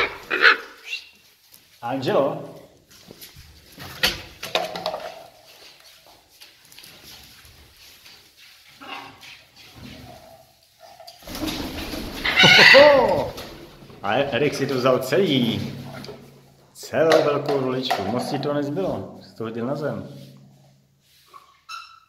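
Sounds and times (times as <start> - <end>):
wings flapping: 11.2 - 14.7
loud parrot call: 12.1 - 13.6.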